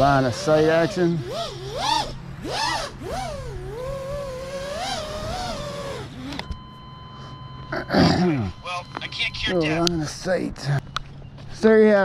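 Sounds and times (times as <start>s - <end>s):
thin high tone: 4.4s - 11.3s.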